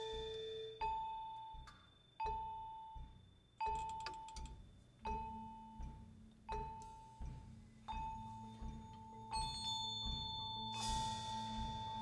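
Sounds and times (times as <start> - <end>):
vibraphone high note: 0.0 - 1.2.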